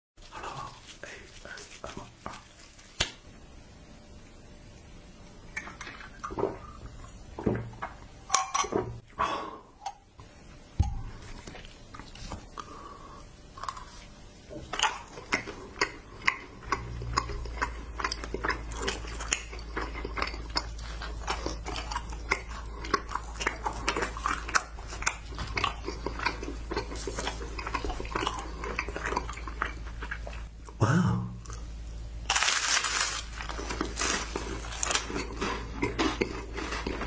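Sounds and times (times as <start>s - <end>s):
steady low hum: 0.2s - 37.0s.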